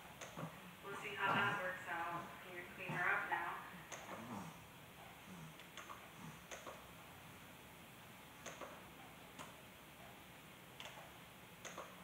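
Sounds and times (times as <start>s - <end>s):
faint vocal sounds: 0.3s - 5.6s.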